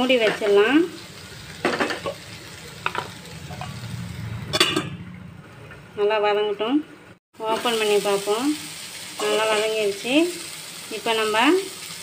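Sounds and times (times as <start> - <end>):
food sizzling in oil: 0.0 - 4.6, 7.3 - 12.0
metal lid clattering on pan: 1.6 - 2.2, 4.5 - 5.0.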